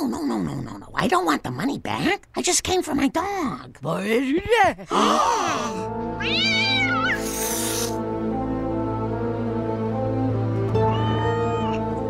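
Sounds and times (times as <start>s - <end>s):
background music: 4.2s - 12.0s
cartoon cat meowing: 5.4s - 8.0s, 10.8s - 11.9s
cat hissing: 5.4s - 8.1s.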